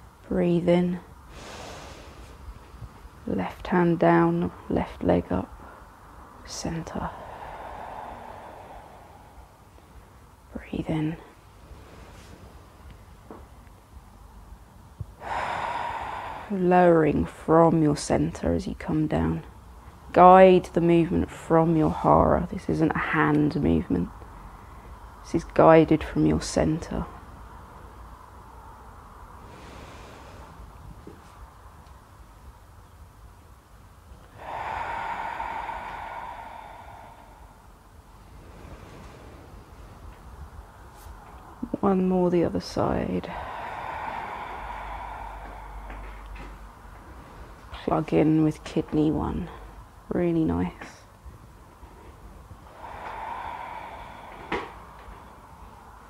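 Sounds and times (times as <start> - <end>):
person breathing: 1.3 - 3.3, 5.5 - 10.6, 15.0 - 17.3, 29.3 - 31.5, 34.2 - 41.7, 42.7 - 48.0, 52.2 - 56.0.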